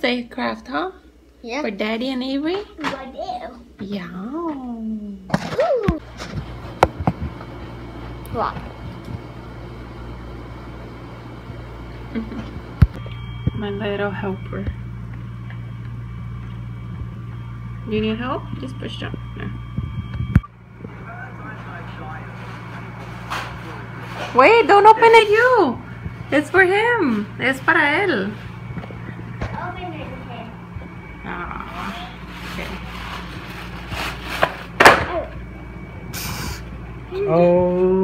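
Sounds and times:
low hum: 4.0s - 38.0s
gift wrap rustling: 31.7s - 34.8s.

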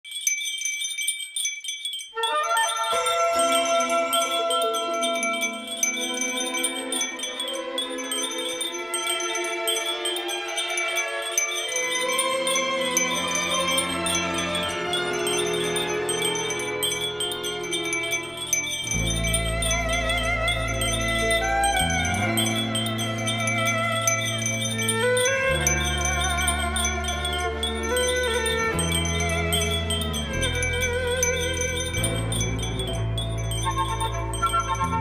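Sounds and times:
glass wind chime tinkling: 0.0s - 35.0s.

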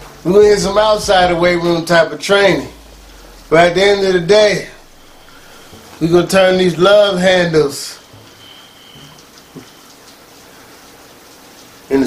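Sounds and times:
faint hiss: 0.0s - 12.0s
thin high-pitched tone: 0.4s - 10.2s.

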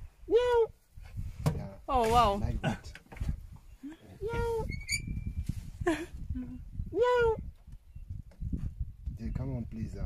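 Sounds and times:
cheetah held call: 6.9s - 7.4s.

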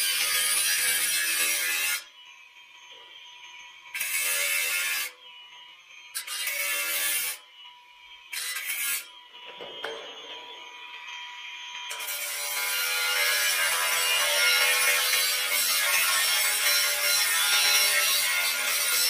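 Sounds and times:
angle grinder motor whining: 0.0s - 19.0s
grinder disc cutting steel: 0.0s - 19.0s.

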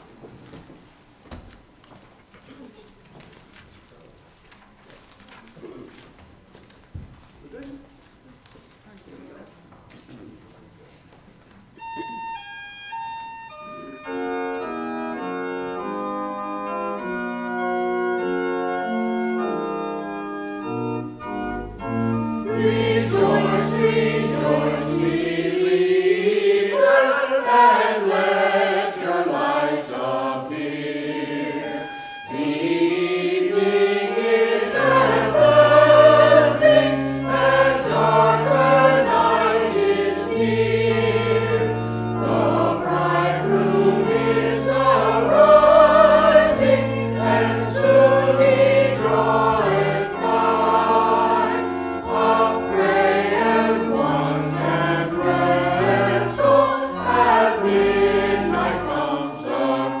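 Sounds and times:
pipe organ: 11.7s - 60.0s
choir singing: 20.6s - 60.0s.

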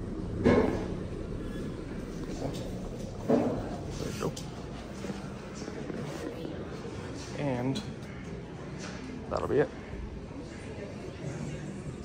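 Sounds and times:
indoor hall hum: 0.0s - 12.0s
faint background voices: 1.6s - 12.0s.

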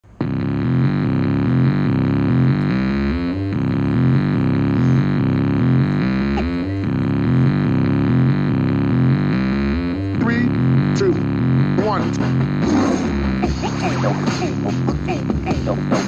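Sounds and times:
buzzy synth-bass riff: 0.0s - 16.0s.

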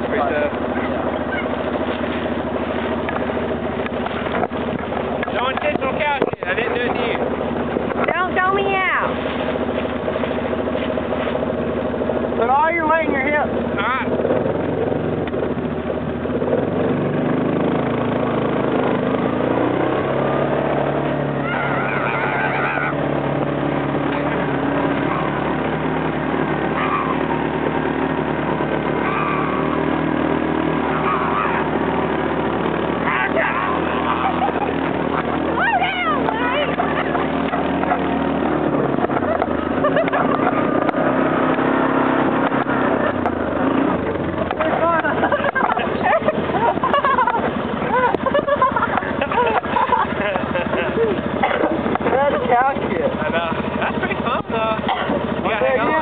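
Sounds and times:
vehicle engine running: 0.0s - 56.0s
people calling out: 0.6s - 1.8s, 21.2s - 23.3s, 26.6s - 27.5s, 28.9s - 32.2s, 32.9s - 40.9s.

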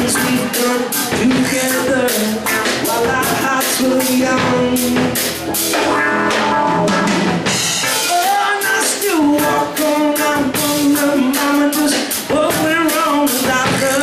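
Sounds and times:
drum kit beat: 0.0s - 14.0s.

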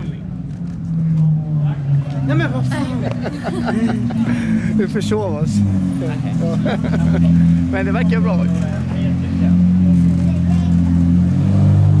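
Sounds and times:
car engine idling: 0.0s - 11.2s.

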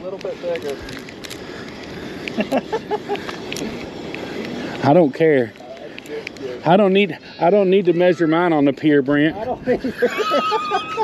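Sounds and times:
man laughing: 2.3s - 3.7s, 9.4s - 11.0s
wind noise on microphone: 6.3s - 11.0s.

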